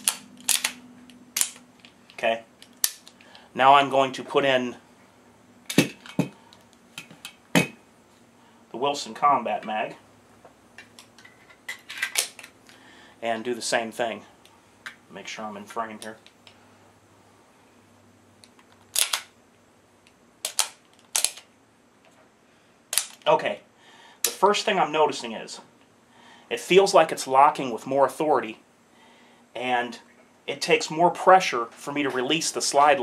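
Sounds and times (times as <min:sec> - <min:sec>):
pistol metallic clicks: 0:00.0 - 0:00.8, 0:01.4 - 0:01.6, 0:02.6 - 0:03.2, 0:18.9 - 0:19.3, 0:20.4 - 0:21.5.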